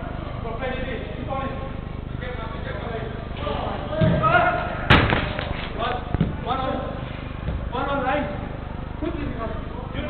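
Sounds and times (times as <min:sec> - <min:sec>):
football being kicked: 0:06.1 - 0:06.4.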